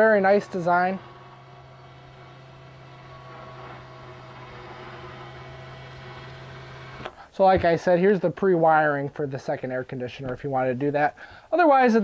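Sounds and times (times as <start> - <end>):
electric motor humming: 0.0 - 7.2.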